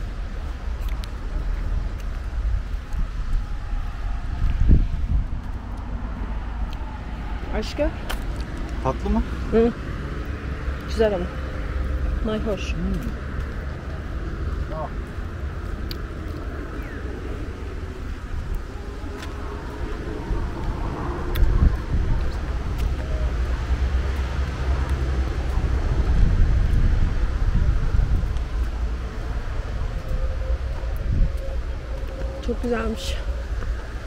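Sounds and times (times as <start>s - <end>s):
wind buffeting microphone: 0.0s - 34.0s
footsteps on stone steps: 12.4s - 16.7s, 18.4s - 30.1s.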